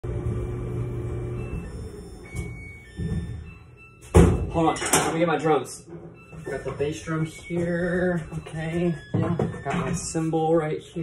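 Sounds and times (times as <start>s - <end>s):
dryer drum humming: 0.0s - 3.6s
high electronic beeps: 6.1s - 10.1s.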